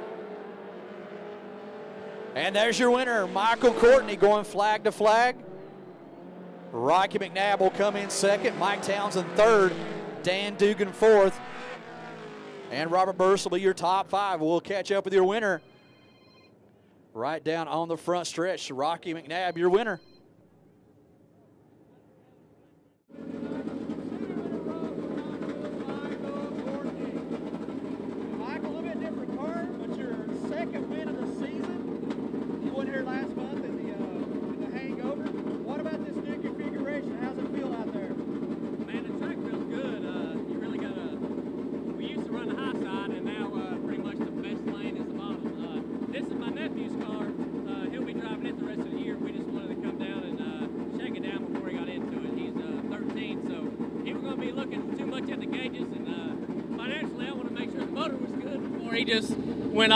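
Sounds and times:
engines droning: 0.0s - 15.8s, 23.1s - 59.9s
voices talking: 2.4s - 5.7s, 6.7s - 11.5s, 12.7s - 15.6s, 17.2s - 20.0s, 23.3s - 38.2s, 42.0s - 59.9s.

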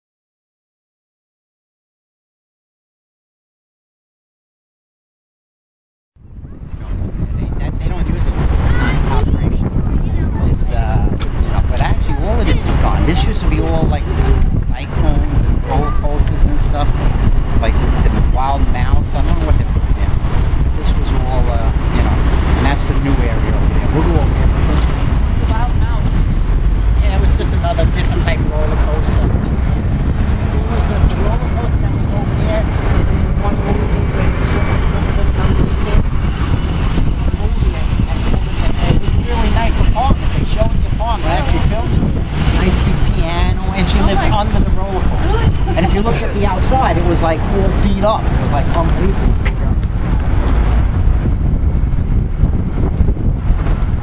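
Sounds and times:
passing traffic: 6.2s - 54.0s
wind rumble on microphone: 6.2s - 54.0s
man talking: 7.2s - 25.1s, 26.8s - 29.6s, 30.3s - 36.0s, 37.3s - 49.8s.

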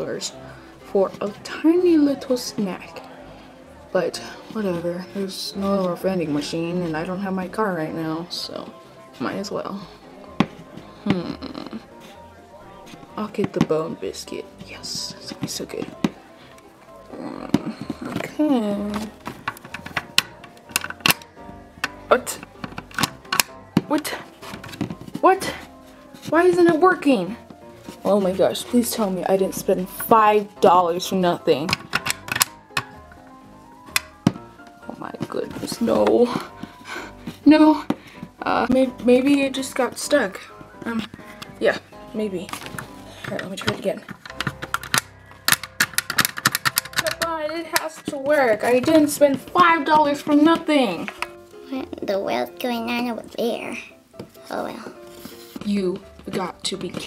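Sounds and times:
quiet background music: 0.0s - 57.0s
plastic clicks and taps: 17.5s - 25.0s, 31.6s - 33.0s, 33.9s - 34.4s, 42.5s - 51.4s.

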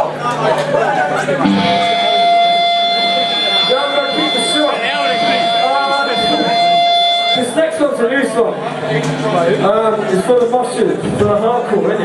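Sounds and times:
crowd chatter: 0.0s - 12.0s
electric guitar held tone: 1.4s - 7.8s.

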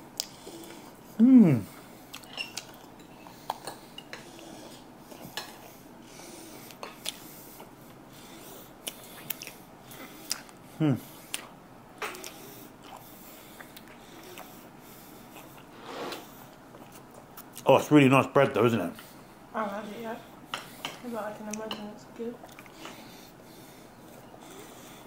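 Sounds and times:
person humming mmm: 1.2s - 1.8s, 10.3s - 11.0s.

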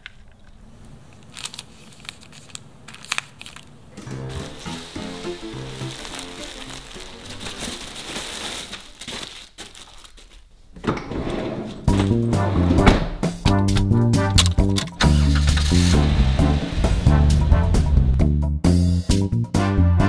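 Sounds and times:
plastic bags crinkling: 0.0s - 10.7s
background music: 3.9s - 8.7s, 11.8s - 20.0s.

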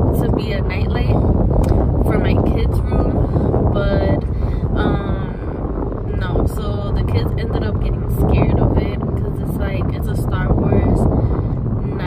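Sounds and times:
woman talking: 0.0s - 11.2s
car cabin rumble: 0.0s - 12.0s.

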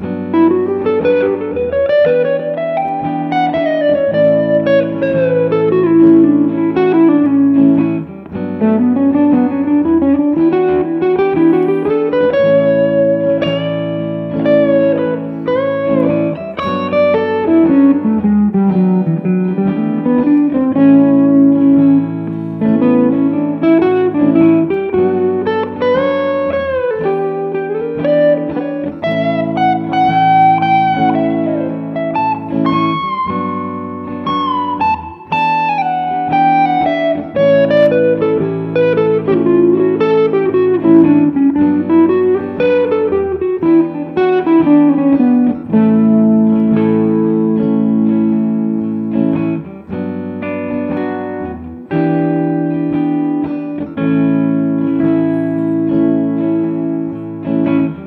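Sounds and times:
electric guitar lead with bends: 0.0s - 58.0s
sustained guitar chords: 0.0s - 58.0s.

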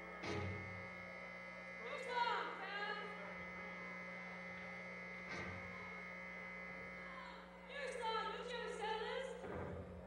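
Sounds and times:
sound system electrical hum: 0.0s - 10.0s.

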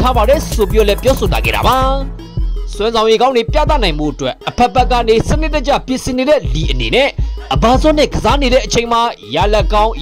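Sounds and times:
bass line: 0.0s - 2.9s
rapping over hip-hop beat: 0.0s - 10.0s.

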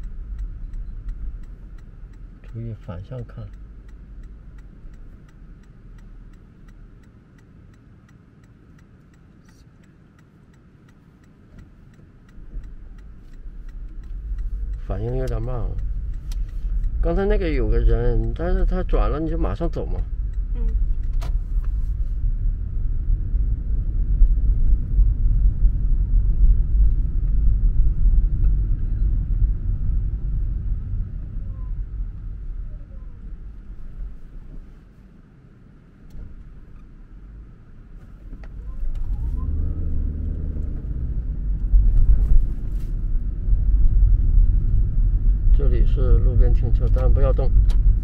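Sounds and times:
road and tyre rumble in car: 0.0s - 48.0s.

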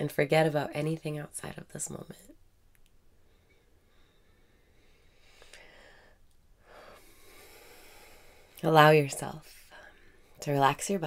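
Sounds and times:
slow breathing: 3.1s - 8.6s, 9.4s - 10.4s.

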